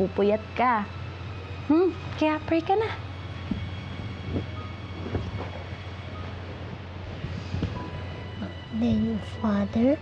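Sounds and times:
steady low hum: 0.0s - 10.0s
faint rustles of movement: 3.4s - 9.4s.

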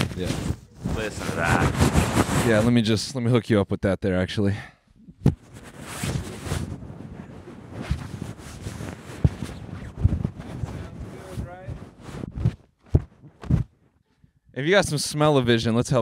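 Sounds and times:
fabric rustling on microphone: 0.0s - 2.7s, 5.3s - 14.1s
loud microphone knocks: 11.7s - 13.7s.

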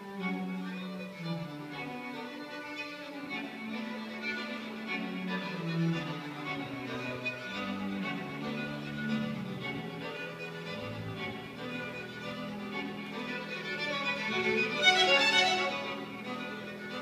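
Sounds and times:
violins playing: 0.0s - 17.0s.

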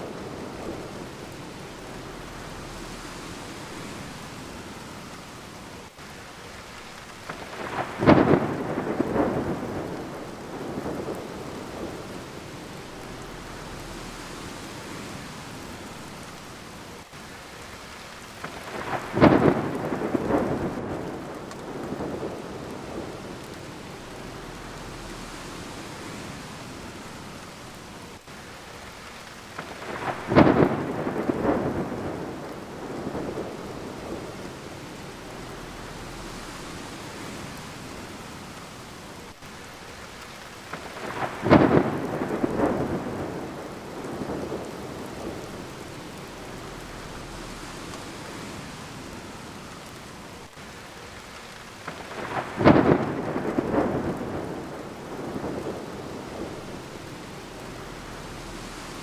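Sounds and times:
thunder cracking and rumbling: 0.0s - 5.2s, 7.2s - 14.6s, 18.3s - 25.8s, 29.6s - 37.8s, 40.6s - 48.7s, 51.8s - 59.0s
steady rain: 0.0s - 59.0s.

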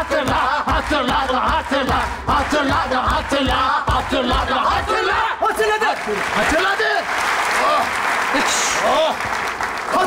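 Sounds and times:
audience applauding: 0.0s - 10.0s.

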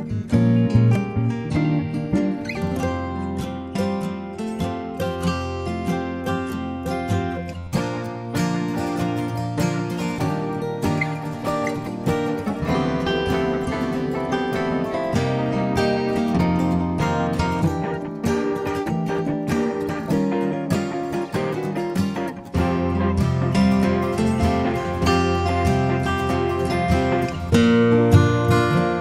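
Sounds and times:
bass line: 0.0s - 3.7s
acoustic guitar strummed and plucked: 0.0s - 29.0s.

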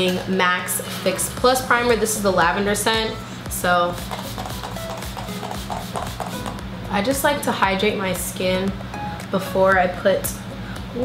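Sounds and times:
fan humming: 0.0s - 11.0s
soft background music: 0.0s - 11.0s
spray bottle hissing: 4.0s - 6.6s.

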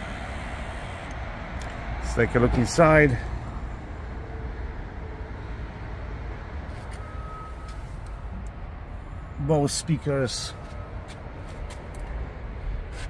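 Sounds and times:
low traffic rumble: 0.0s - 13.0s.

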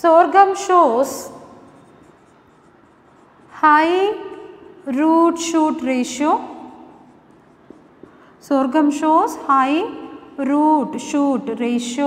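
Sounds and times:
marker pen scratching on whiteboard: 0.5s - 10.2s.

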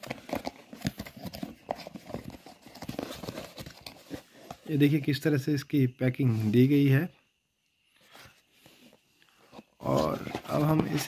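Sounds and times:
cardboard knocks taps and scrapes: 10.0s - 11.0s.

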